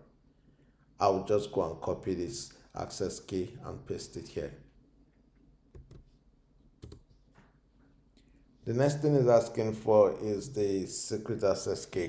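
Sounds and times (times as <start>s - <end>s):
faint keyboard keystrokes: 6.8s - 7.4s.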